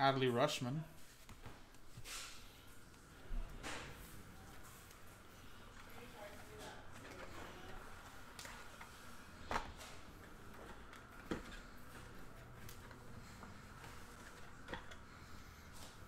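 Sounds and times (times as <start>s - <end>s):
cards handled by hand: 1.0s - 3.0s, 4.5s - 16.0s.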